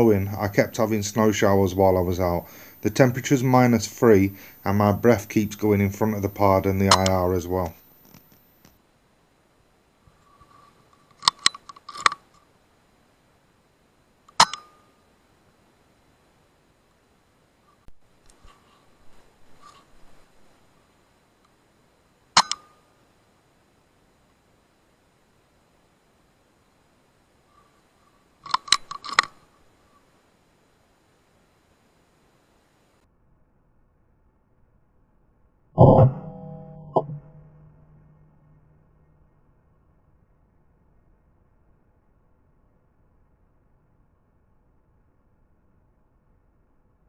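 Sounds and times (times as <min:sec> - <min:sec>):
loud ringing click: 0:05.1 - 0:08.4, 0:35.8 - 0:38.3
sharp clicks and crunches: 0:11.0 - 0:12.4, 0:28.4 - 0:29.4
sharp mechanical clicks: 0:14.3 - 0:14.8, 0:28.4 - 0:29.4.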